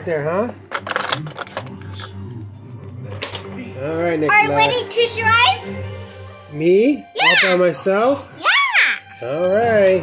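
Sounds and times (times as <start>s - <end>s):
soft tv music: 0.0s - 10.0s
plastic toy clicks: 0.7s - 2.0s.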